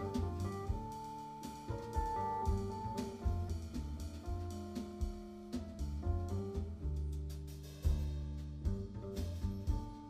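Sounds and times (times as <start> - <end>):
keyboard chords: 0.0 - 3.4
double bass low notes: 0.0 - 10.0
jazz trio playing: 0.0 - 10.0.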